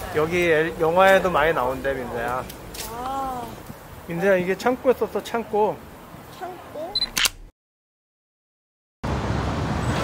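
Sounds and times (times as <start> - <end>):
road traffic passing: 0.0 - 6.9, 9.0 - 10.0.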